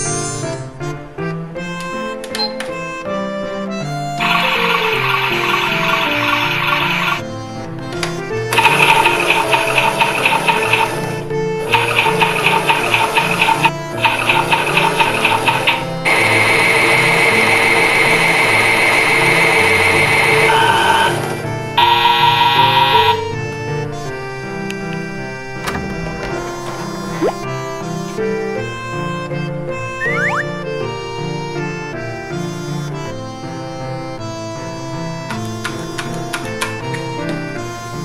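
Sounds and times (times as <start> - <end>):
light background music: 0.0 - 38.0
toy motor whirring: 4.2 - 7.2, 8.5 - 23.2.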